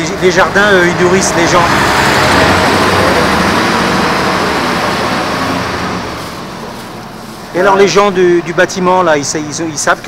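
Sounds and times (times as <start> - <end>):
motor vehicle passing: 0.0 - 10.0.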